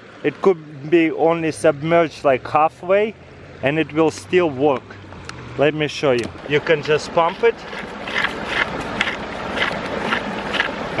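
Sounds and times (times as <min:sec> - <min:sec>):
hand pump water filter pumping: 0:06.2 - 0:11.0.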